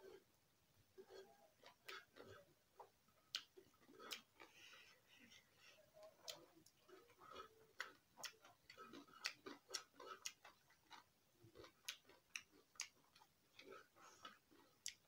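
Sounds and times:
chewing clicks and smacks: 1.0 - 15.0.

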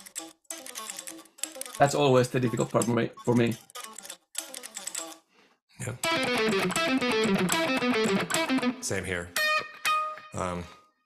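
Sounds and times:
electric guitar picked notes: 6.0 - 10.5.

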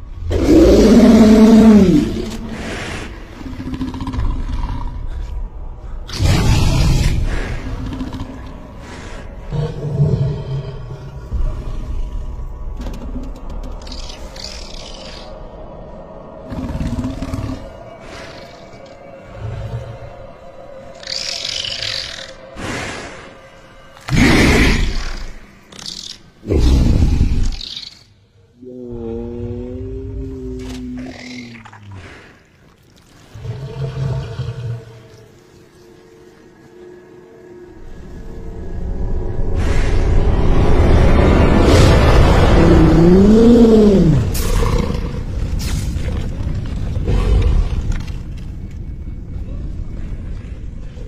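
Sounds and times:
low rumble: 36.3 - 51.0
monster roaring: 41.0 - 45.4.

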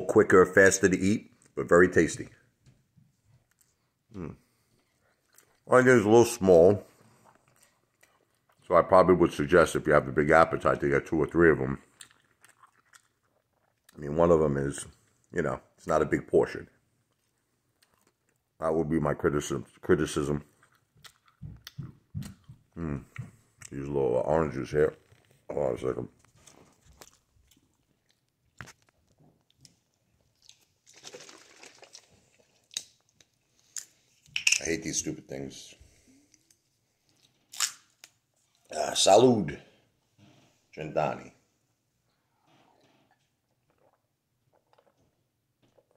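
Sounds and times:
faint chewing: 3.0 - 5.8, 6.8 - 8.7, 11.2 - 14.1, 17.0 - 18.6, 20.4 - 23.8, 24.9 - 25.5, 26.2 - 34.3, 42.0 - 45.9.

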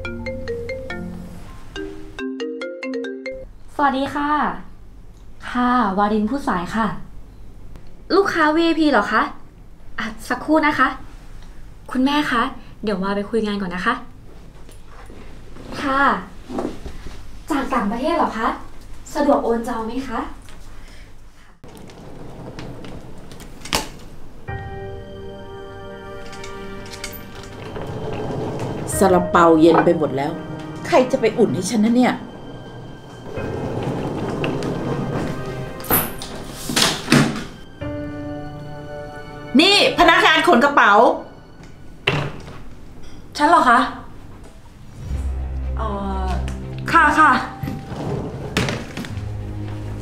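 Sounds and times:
marimba phone ringtone: 0.0 - 3.5
soft background music: 0.0 - 3.5, 24.2 - 50.0
suitcases rolling on tile floor: 21.6 - 24.5, 26.2 - 37.7, 47.5 - 50.0.

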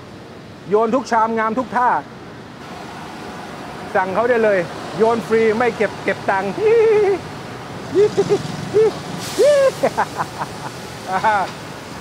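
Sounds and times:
short shouts: 8.8 - 9.8
gas flame rushing: 9.0 - 11.6
wok flaring up with a hiss: 9.1 - 10.4.

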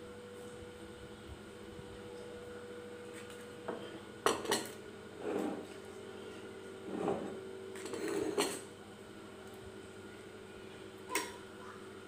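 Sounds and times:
plates and tableware clinking: 6.9 - 8.7.

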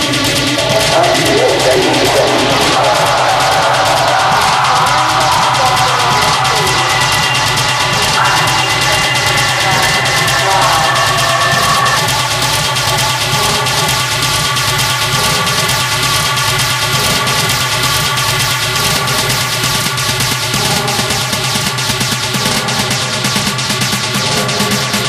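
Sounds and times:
held synth tones: 0.0 - 16.0
industrial techno beat: 0.0 - 25.0.

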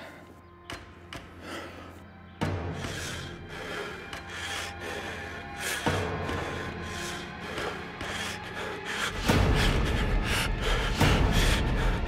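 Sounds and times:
dramatic music with heavy bass: 0.0 - 12.0
quick sharp breaths: 2.8 - 12.0.

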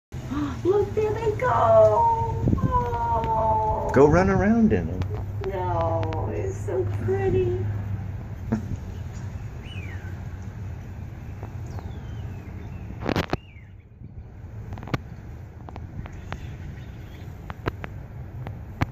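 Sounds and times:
bird chirps: 8.6 - 14.2, 16.0 - 17.5.

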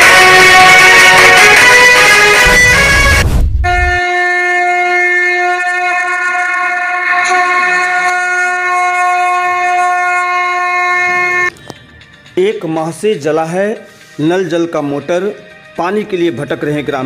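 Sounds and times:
conch shell blown: 0.0 - 11.5
low boom: 2.4 - 4.0.

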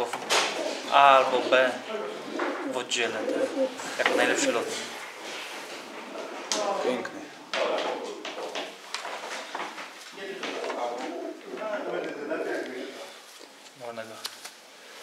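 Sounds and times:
men talking: 0.0 - 5.0, 6.4 - 8.5, 10.1 - 13.2, 13.8 - 14.2
pigeons cooing: 0.3 - 5.0, 10.4 - 13.2.

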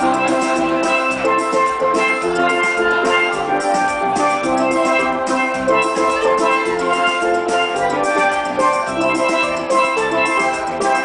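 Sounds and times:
steady drum beat: 0.0 - 11.0
steel pans ringing: 0.0 - 11.0.

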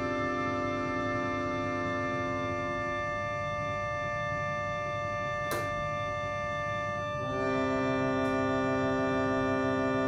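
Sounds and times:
reed organ sustained chord: 0.0 - 10.0.

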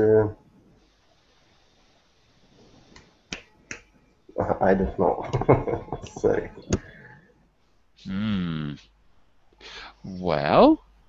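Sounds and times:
faint background noise: 0.0 - 11.0.

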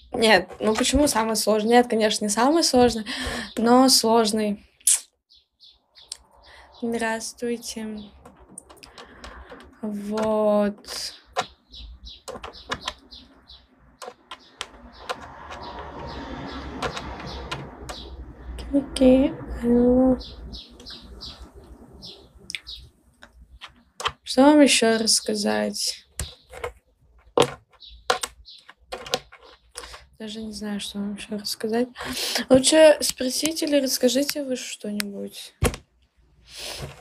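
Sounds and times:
small bird chirping: 4.8 - 31.4
light irregular clicks and taps: 8.2 - 10.4
sharp clicks: 10.9 - 13.3, 14.0 - 18.1.

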